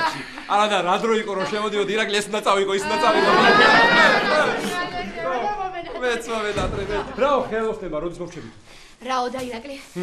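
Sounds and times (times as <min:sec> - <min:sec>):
man and woman talking: 0:00.5 - 0:08.6.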